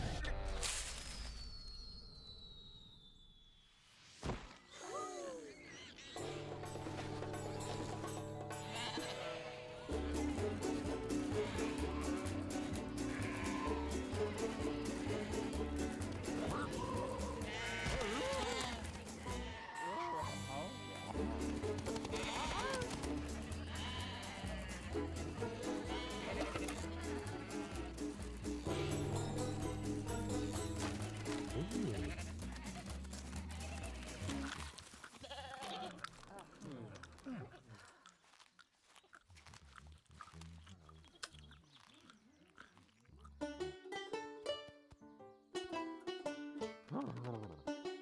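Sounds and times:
cartoon background music: 6.2s - 34.6s, 43.3s - 48.0s
cartoon sheep vocal sounds: 11.3s - 15.4s, 16.4s - 21.1s, 22.1s - 23.0s.

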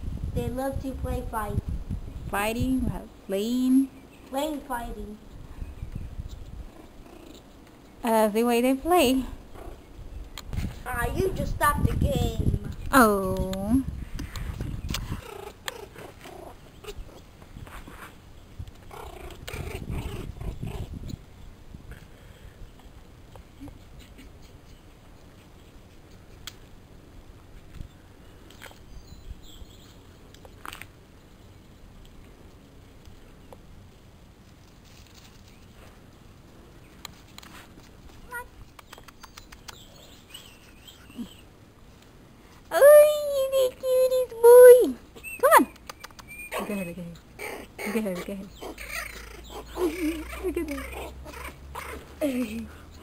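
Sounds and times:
puppies growling: 6.6s - 7.7s, 9.4s - 9.9s, 15.0s - 17.3s, 18.8s - 21.0s, 46.5s - 53.0s
high-pitched vocal calls: 44.4s - 53.0s.

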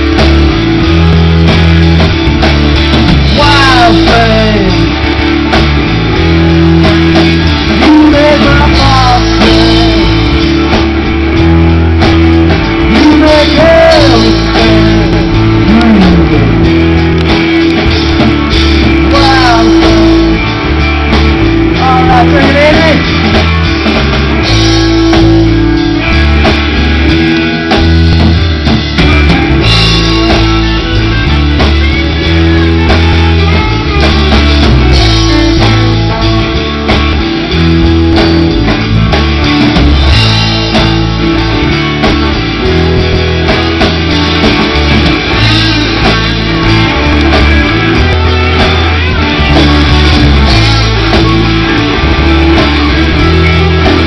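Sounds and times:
bass guitar: 0.0s - 54.0s
drums: 0.0s - 54.0s
electric guitars: 0.0s - 54.0s.

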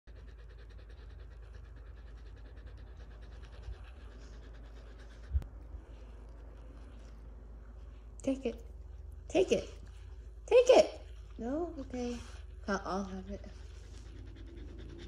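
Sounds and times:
dog panting rapidly: 0.0s - 15.0s.

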